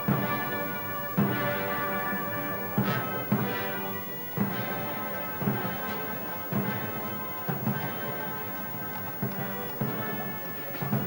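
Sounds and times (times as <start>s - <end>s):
low drum beats: 0.0s - 8.2s
brass band chords: 0.0s - 11.0s.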